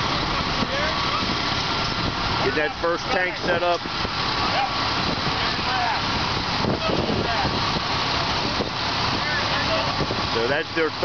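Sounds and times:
fire truck engine idling: 0.0 - 11.0
wind buffeting microphone: 0.0 - 11.0.

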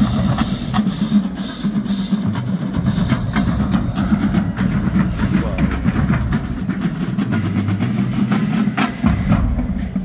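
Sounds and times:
drums and percussion strokes: 0.0 - 10.0
marching band playing: 0.0 - 10.0.

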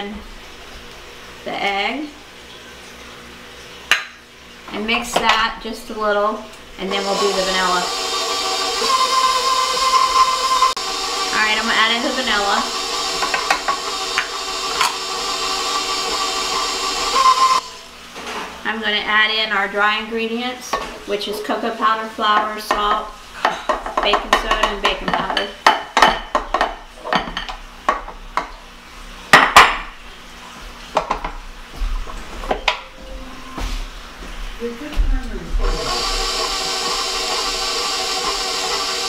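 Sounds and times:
stand mixer running: 6.8 - 17.9, 35.5 - 39.0.

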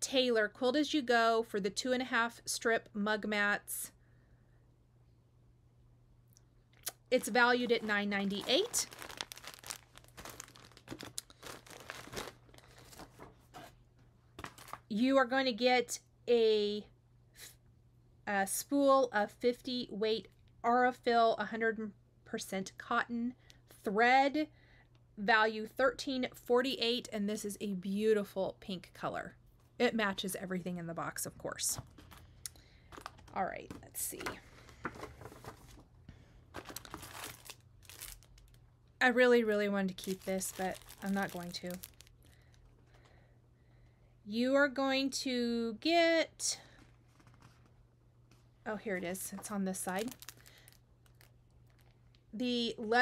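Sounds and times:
packaging crinkling: 6.9 - 13.7, 14.4 - 14.9, 32.9 - 33.4, 36.5 - 38.7, 39.9 - 42.8, 49.7 - 52.2.

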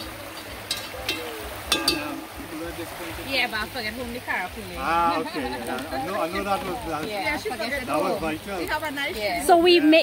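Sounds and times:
spoon clinking against a dish: 0.6 - 2.2.

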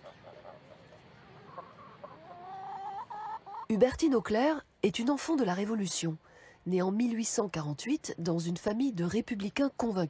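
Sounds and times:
chickens clucking: 0.0 - 4.3.

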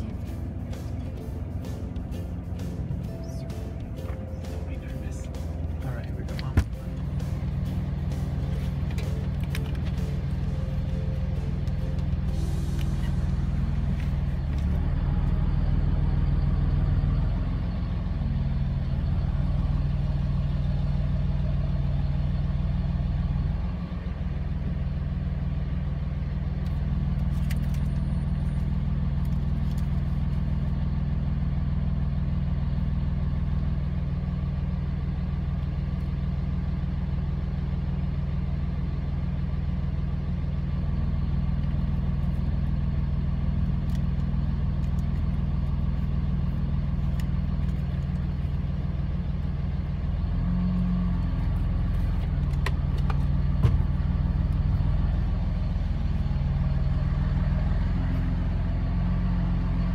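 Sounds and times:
vehicle engine idling: 0.0 - 59.9.

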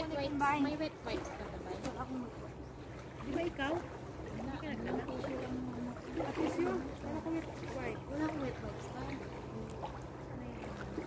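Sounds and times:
women talking casually: 0.0 - 11.0.

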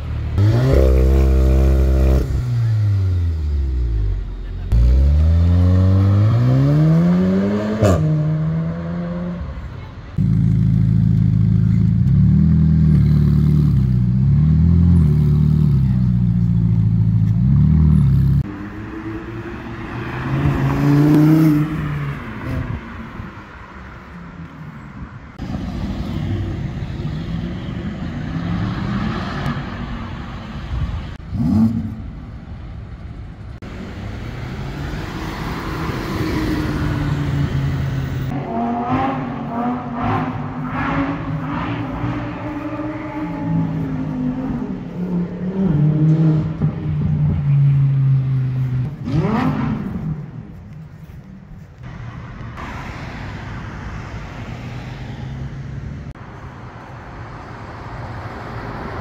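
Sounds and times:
street traffic: 0.0 - 59.0
cars accelerating past: 0.3 - 9.6, 17.2 - 23.8, 25.3 - 32.1, 33.6 - 50.6
sports car engine revving: 38.2 - 48.1, 48.9 - 50.5.

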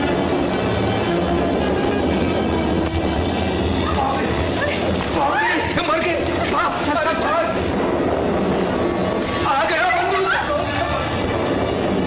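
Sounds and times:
giant ball rolling rumble: 0.0 - 12.0.

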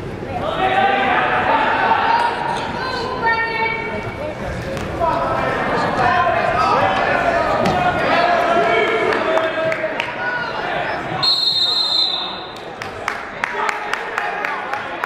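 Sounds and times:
spectators and coaches shouting: 0.4 - 3.8, 5.4 - 12.5
referee's whistle: 11.2 - 12.5.

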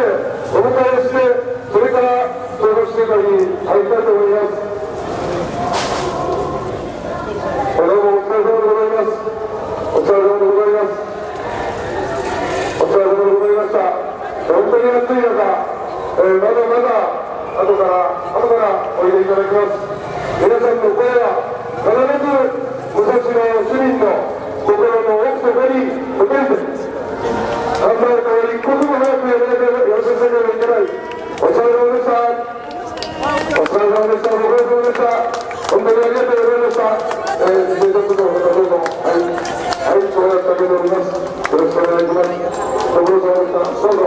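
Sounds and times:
man calling through megaphone: 0.0 - 5.0, 7.2 - 11.2, 12.8 - 44.0
people clapping: 27.6 - 32.0, 32.6 - 44.0.

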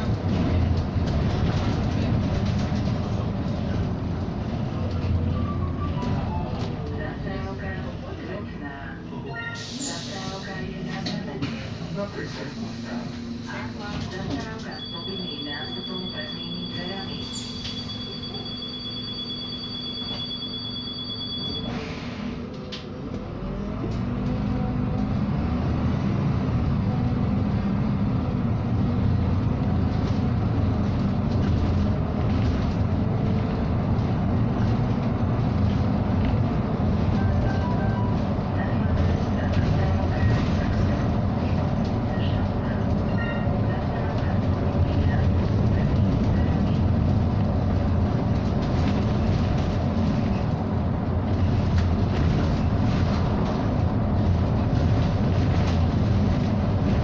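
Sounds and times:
road and cabin noise: 0.0 - 57.0
two-tone beep: 14.7 - 21.8
bus engine rising in pitch: 17.2 - 38.8.

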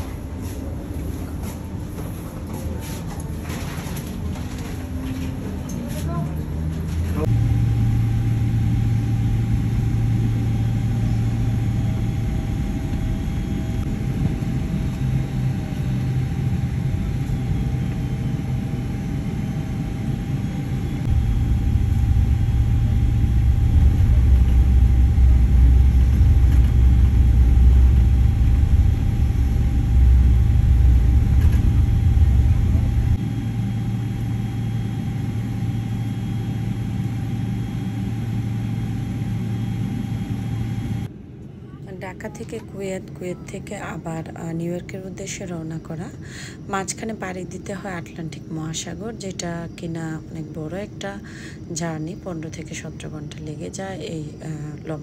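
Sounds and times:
jet engine low rumble: 0.0 - 55.0
jet engine whine: 0.0 - 55.0.

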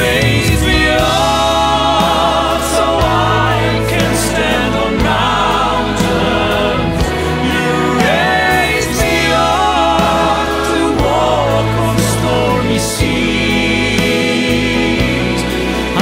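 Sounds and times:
drum hits: 0.0 - 5.4
choir and soloists singing: 0.0 - 16.0
low bass: 0.0 - 16.0
orchestra and band: 0.0 - 16.0.

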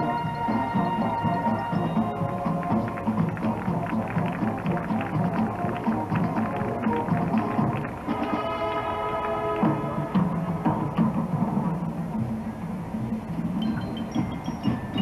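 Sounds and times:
marching band playing: 0.0 - 15.0
drum and bell strikes: 13.6 - 15.0.

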